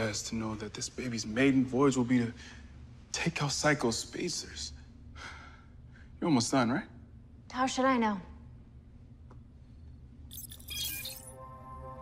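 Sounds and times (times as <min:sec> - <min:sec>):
low steady hum: 0:00.0 - 0:12.0
glassy chiming shimmer: 0:10.3 - 0:11.5.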